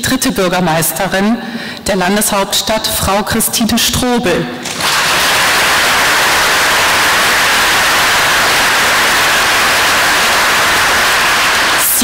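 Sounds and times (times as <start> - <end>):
audience applauding: 4.6 - 12.0.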